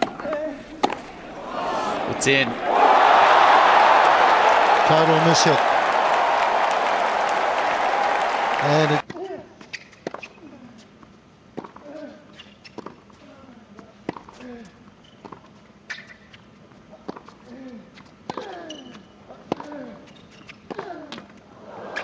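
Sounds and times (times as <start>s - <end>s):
racket striking tennis ball: 0.0s - 1.2s
player grunting: 1.2s - 3.0s.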